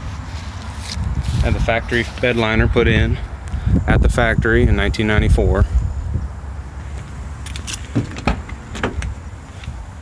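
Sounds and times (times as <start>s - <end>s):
car door clicks and knocks: 7.5s - 9.2s.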